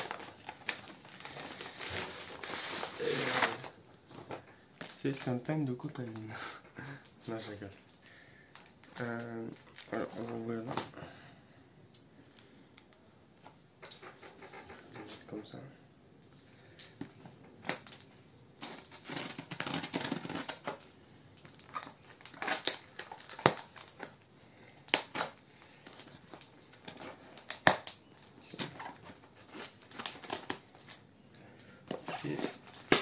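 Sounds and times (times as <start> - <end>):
crinkling and scraping: 0.0 - 11.2, 12.0 - 15.7, 16.3 - 33.0
scissors cutting tape and cardboard: 18.6 - 20.8.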